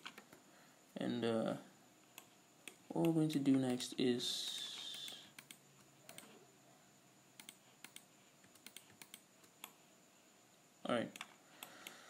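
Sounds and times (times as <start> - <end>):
computer keyboard and mouse clicks: 0.0 - 0.4, 4.4 - 6.4, 7.4 - 9.8, 11.1 - 12.0.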